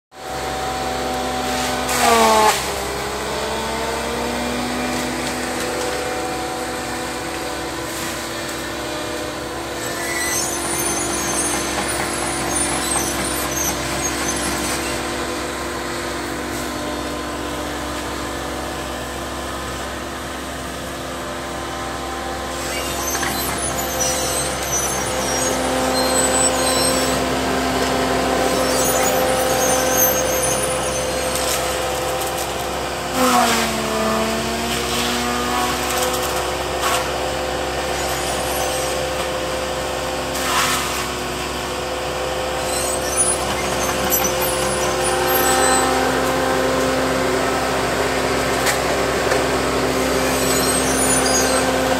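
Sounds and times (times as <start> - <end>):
diesel engine and hydraulics running: 0.2 - 51.9.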